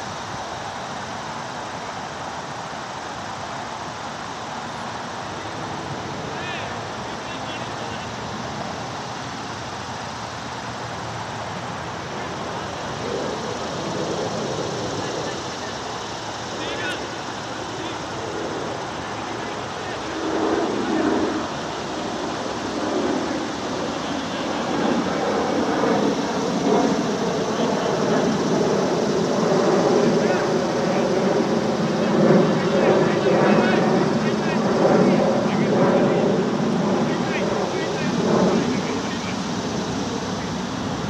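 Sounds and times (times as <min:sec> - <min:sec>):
background hiss: 0:00.0 - 0:41.0
men talking and calling out: 0:12.1 - 0:41.0.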